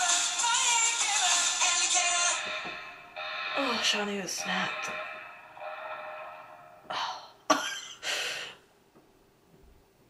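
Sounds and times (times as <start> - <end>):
pop song: 0.0 - 7.1.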